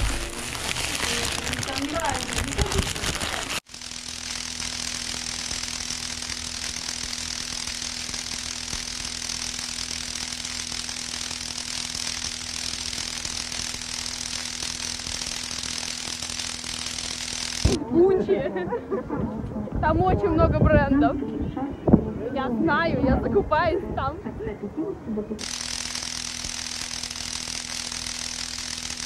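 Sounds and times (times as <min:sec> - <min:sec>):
mechanical whir: 0:00.0 - 0:17.8, 0:25.4 - 0:29.0.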